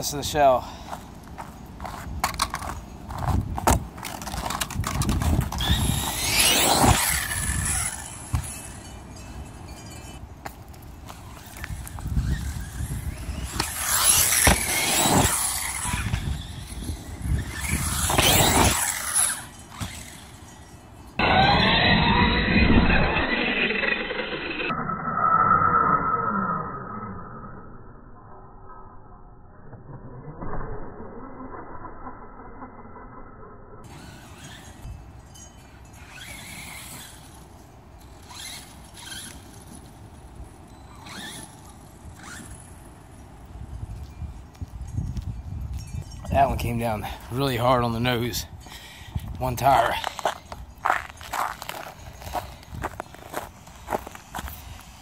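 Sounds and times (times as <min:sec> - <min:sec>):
tyre noise: 0:00.0 - 0:24.7, 0:33.9 - 0:43.2, 0:48.7 - 0:55.0
electric motor whining: 0:04.0 - 0:10.2, 0:11.0 - 0:24.9, 0:33.9 - 0:42.8.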